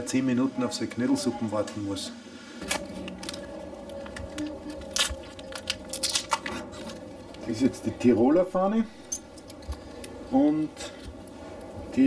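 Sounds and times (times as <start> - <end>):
plastic packaging crinkling: 2.6 - 7.5.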